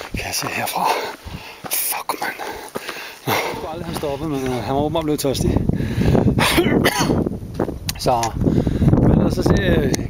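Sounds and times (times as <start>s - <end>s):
man breathing hard: 0.8s - 3.7s, 5.6s - 6.4s, 8.4s - 9.0s
man making vocal sounds: 3.2s - 4.7s.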